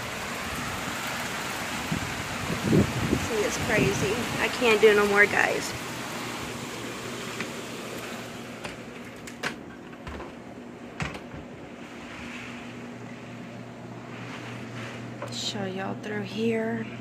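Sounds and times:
heavy rain: 0:00.0 - 0:09.4
steady low hum: 0:00.2 - 0:17.0
sharp clicks and knocks: 0:08.6 - 0:10.4, 0:11.0 - 0:11.5.

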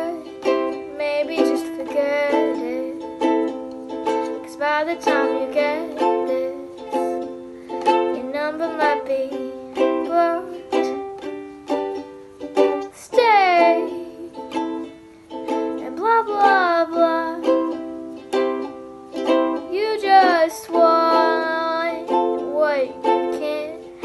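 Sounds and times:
girl singing: 0:00.0 - 0:24.0
ukulele strumming chords: 0:00.0 - 0:24.0.

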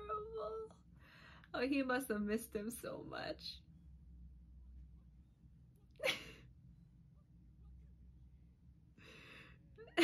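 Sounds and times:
faint low room hum: 0:00.0 - 0:10.0
woman laughing: 0:06.0 - 0:06.5.

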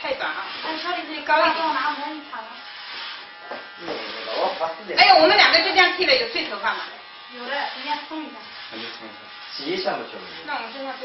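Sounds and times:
electric hair clipper buzzing: 0:00.0 - 0:11.0.

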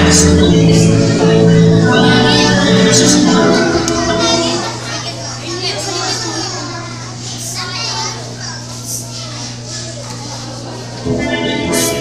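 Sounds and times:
music: 0:00.0 - 0:04.7, 0:11.0 - 0:12.0
children chattering and calling out: 0:00.0 - 0:12.0.

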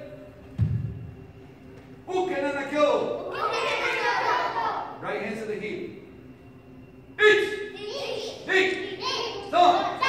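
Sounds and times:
low dull thud: 0:00.6 - 0:01.1.

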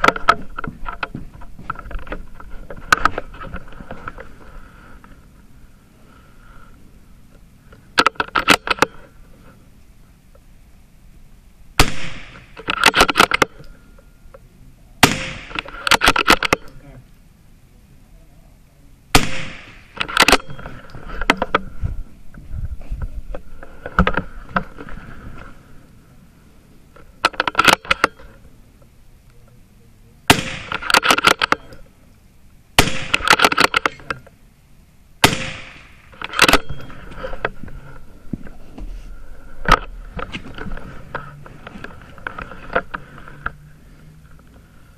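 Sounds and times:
rifle shots: 0:11.8 - 0:13.4, 0:15.0 - 0:16.7, 0:19.1 - 0:20.9, 0:30.3 - 0:31.7, 0:32.8 - 0:34.0, 0:35.2 - 0:37.0.

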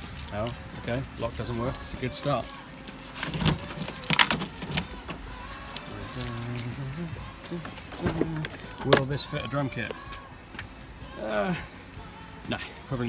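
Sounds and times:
car keys jangling: 0:00.0 - 0:06.8
keys clicking against lock: 0:01.3 - 0:06.7.

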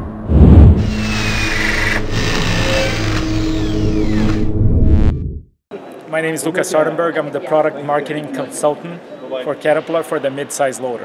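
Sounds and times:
engine-like drone: 0:00.0 - 0:05.3.

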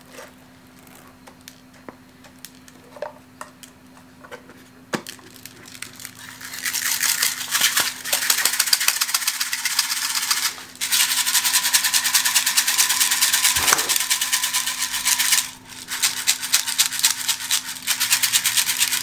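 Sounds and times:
granules rattling in plastic box: 0:05.3 - 0:19.0.

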